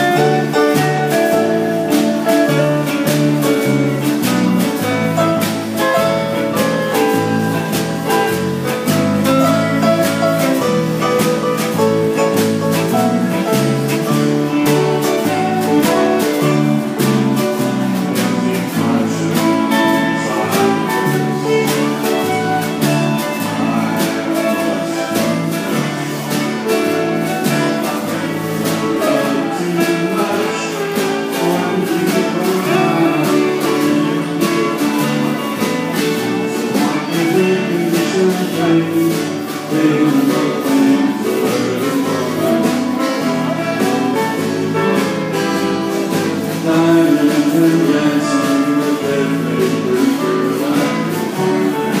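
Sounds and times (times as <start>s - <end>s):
drum kit beat: 0.0s - 52.0s
electric guitars: 0.0s - 52.0s
fiddle: 0.0s - 52.0s
keyboard: 0.0s - 52.0s.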